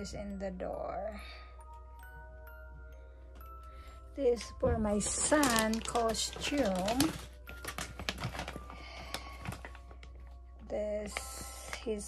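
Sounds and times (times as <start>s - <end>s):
plastic packaging crinkling: 4.2s - 12.0s.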